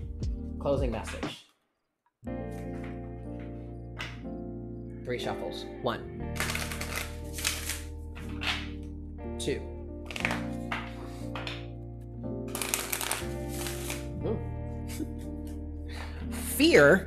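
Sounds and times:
soft lo-fi music: 0.0s - 1.4s, 2.3s - 17.0s
cards being shuffled: 6.4s - 8.8s, 10.1s - 11.6s, 12.5s - 14.1s.

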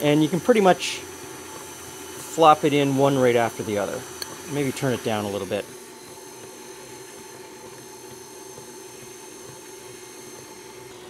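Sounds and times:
stand mixer running: 0.0s - 11.0s.

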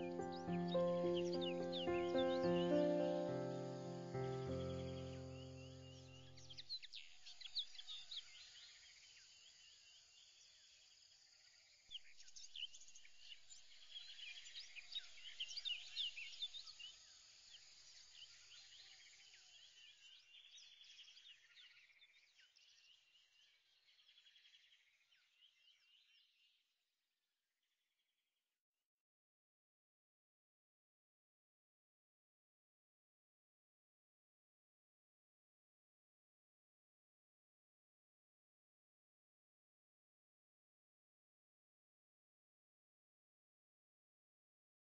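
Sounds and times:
music chord: 0.0s - 6.2s
birds chirping: 0.0s - 8.3s.

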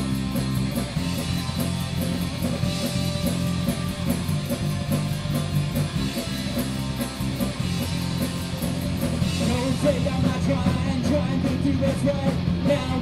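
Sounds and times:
cymbals keeping fast beat: 0.0s - 13.0s
rock band playing: 0.0s - 13.0s.

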